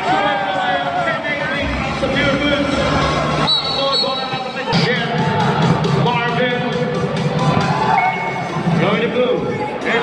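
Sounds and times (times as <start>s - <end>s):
crowd noise in indoor hall: 0.0s - 10.0s.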